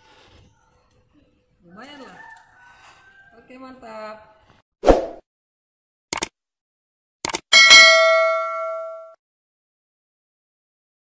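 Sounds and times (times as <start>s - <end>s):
bell-like notification ding: 7.6s - 9.2s.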